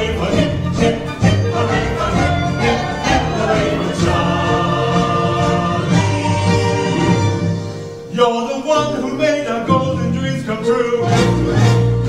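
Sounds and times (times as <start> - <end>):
cast singing in chorus: 0.0 - 7.4
orchestra playing: 0.0 - 12.0.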